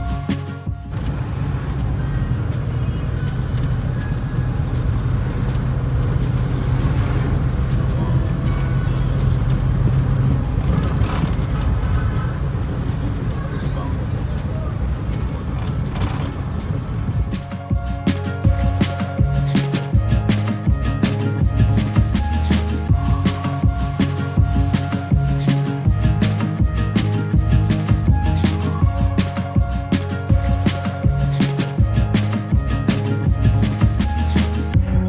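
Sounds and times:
bus engine drone: 0.0s - 35.0s
road noise: 0.0s - 35.0s.

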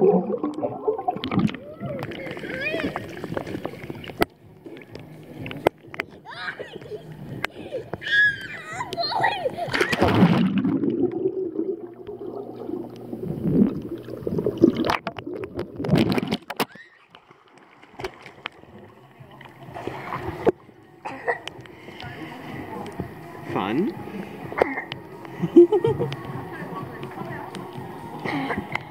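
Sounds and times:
muffled underwater gurgling: 0.0s - 8.0s, 8.6s - 16.2s
water splashing in pool: 0.0s - 28.9s
child squealing: 1.6s - 3.0s, 6.2s - 7.0s, 7.6s - 10.0s, 16.7s - 17.0s
children's voices: 1.6s - 3.3s, 6.0s - 10.1s.

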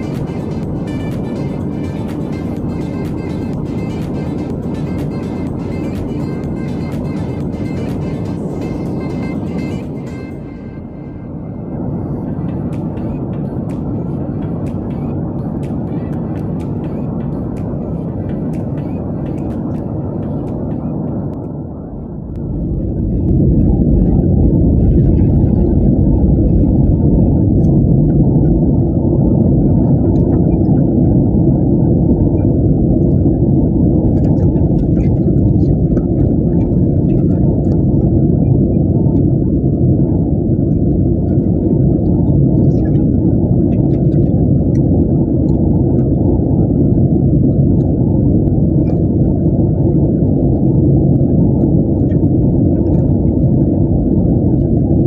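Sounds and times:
airliner cabin engine roar: 0.0s - 55.0s.

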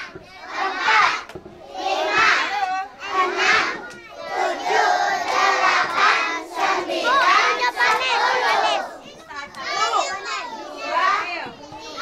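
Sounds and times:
crowd of children talking: 0.0s - 12.0s.

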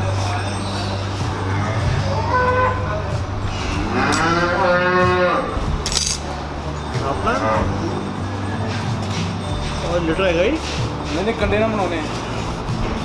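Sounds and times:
cow mooing: 3.7s - 5.6s.

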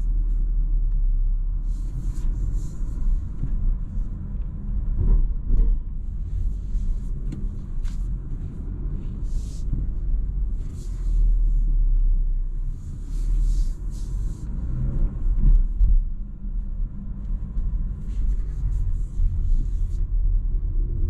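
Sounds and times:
car engine rumble: 0.0s - 21.0s.

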